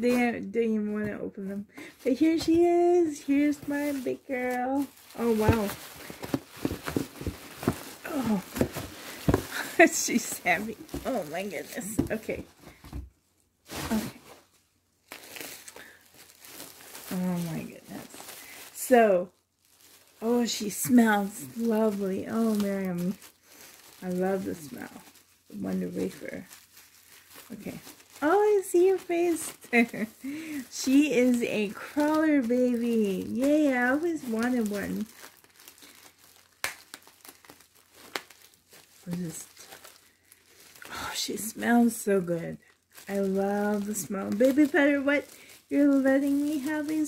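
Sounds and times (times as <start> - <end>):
plastic bag crinkling: 0.0 - 13.0, 13.6 - 47.0
sharp plastic crackles: 1.8 - 47.0.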